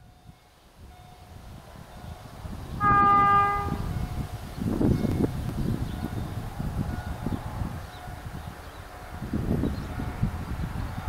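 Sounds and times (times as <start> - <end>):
train horn blast: 2.8 - 4.1.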